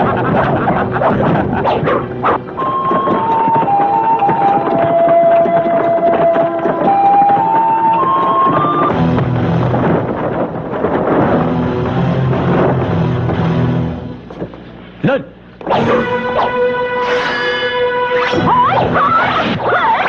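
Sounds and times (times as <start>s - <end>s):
dense backing music: 0.0s - 14.9s, 15.6s - 19.6s
low rhythmic music with drum pulse: 0.0s - 19.6s
bamboo flute melody: 1.6s - 8.9s.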